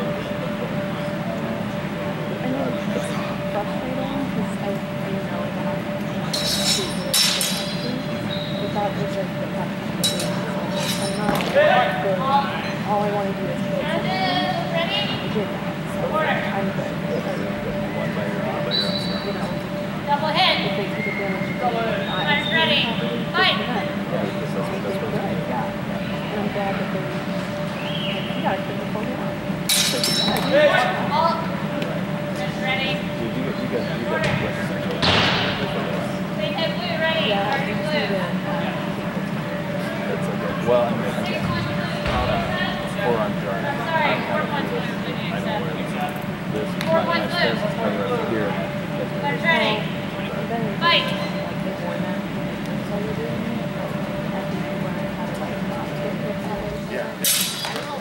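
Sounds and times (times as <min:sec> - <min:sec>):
steady hum: 0:00.0 - 0:58.0
voices calling out: 0:00.0 - 0:58.0
metallic ring: 0:29.7 - 0:30.5.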